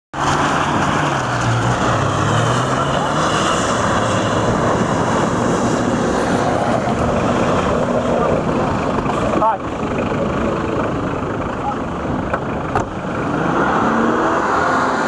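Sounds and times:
off-road vehicle engine running hard: 0.1s - 15.0s.

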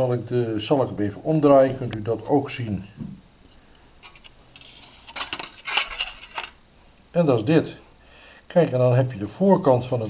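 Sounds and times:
thin aluminium clinking and crinkling: 4.0s - 6.6s.

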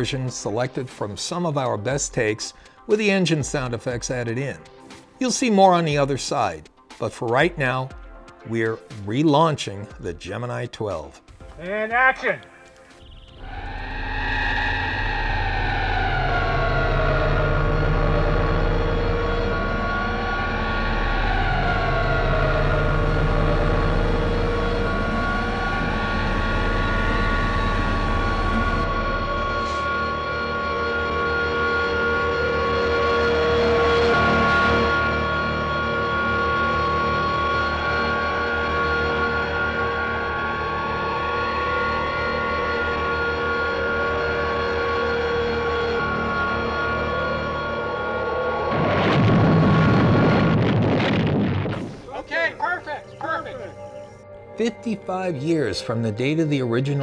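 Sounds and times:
deep rumble: 13.1s - 54.3s
warbling electronic hum: 13.2s - 54.5s.

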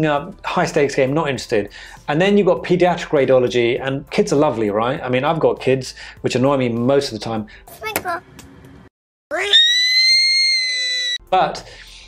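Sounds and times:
boy screaming: 9.3s - 11.2s.

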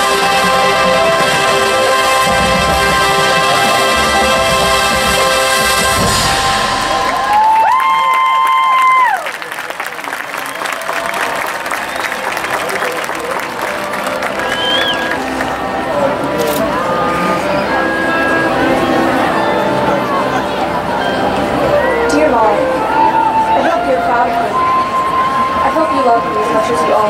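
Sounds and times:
marching band brass chord: 0.0s - 8.0s, 11.4s - 27.0s
crowd cheering and applause: 0.0s - 27.0s
whoops and whistles: 14.3s - 15.2s.

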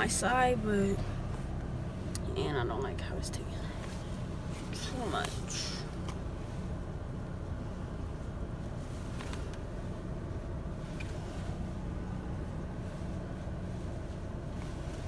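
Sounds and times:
low rumble in car cabin: 0.0s - 15.0s.

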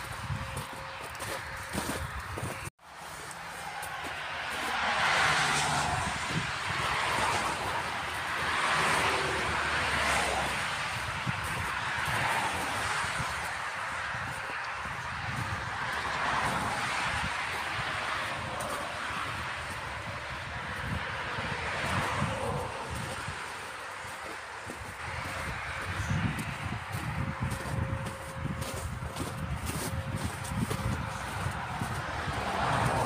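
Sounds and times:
tram wheel and track noise: 0.0s - 33.0s.

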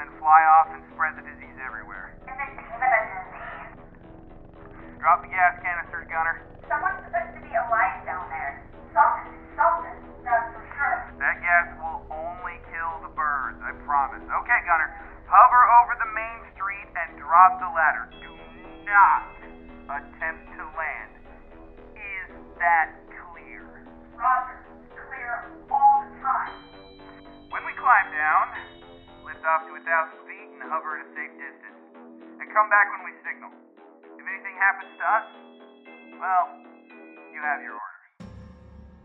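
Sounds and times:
voices through a radio: 0.0s - 3.8s, 4.6s - 21.2s, 22.0s - 26.7s, 27.5s - 31.7s, 32.4s - 33.6s, 34.2s - 35.3s, 36.2s - 36.6s
background music with low notes: 0.0s - 39.0s
low rumble: 0.1s - 26.7s, 38.2s - 39.0s.

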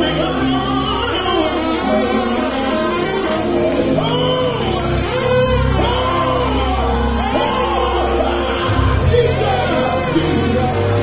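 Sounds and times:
gospel band playing: 0.0s - 11.0s
steady bass notes: 0.0s - 11.0s
voices singing: 0.0s - 11.0s.

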